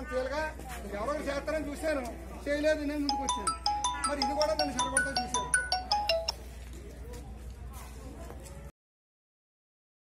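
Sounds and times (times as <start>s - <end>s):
bell-like electronic ringtone melody: 3.0s - 6.5s.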